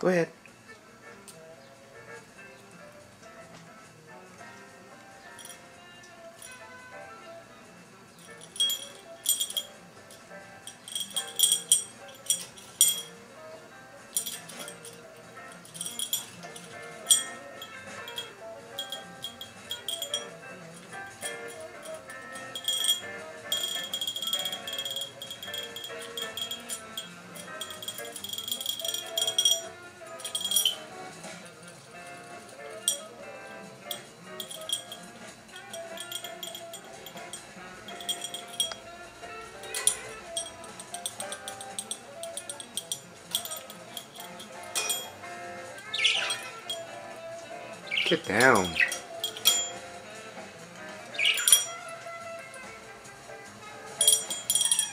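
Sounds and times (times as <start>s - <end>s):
background music: 0.0s - 54.9s
small bell jingling: 5.2s - 7.4s, 8.2s - 54.9s.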